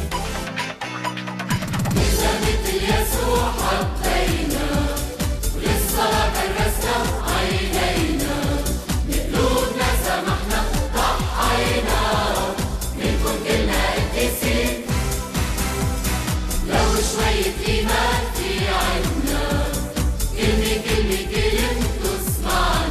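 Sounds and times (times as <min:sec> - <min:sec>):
backing music with steady beat: 0:00.0 - 0:22.9
voices singing a hymn: 0:02.0 - 0:15.1, 0:16.6 - 0:22.9.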